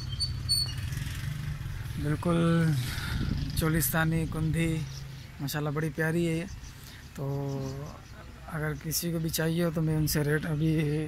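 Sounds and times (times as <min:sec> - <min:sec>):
high bird chirps: 0:00.0 - 0:01.4, 0:04.6 - 0:11.0
low engine rumble: 0:00.0 - 0:11.0.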